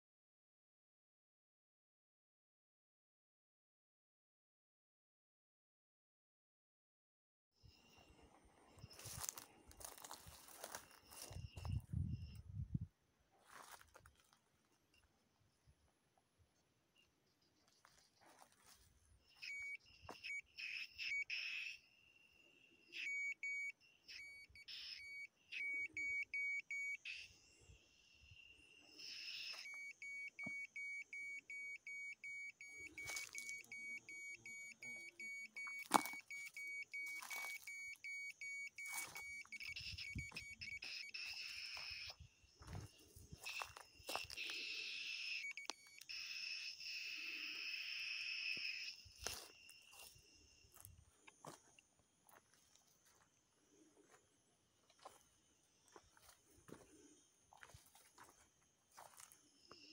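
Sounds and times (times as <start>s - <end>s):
high electronic beeping: 8.8s - 12.6s, 19.3s - 21.9s, 22.9s - 27.6s, 28.3s - 50.9s
dry leaves crunching underfoot: 9.0s - 11.4s, 13.4s - 14.4s, 37.1s - 37.7s.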